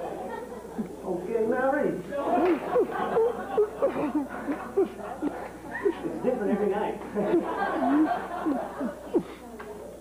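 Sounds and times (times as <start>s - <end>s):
laughter and chuckling: 2.2s - 9.4s.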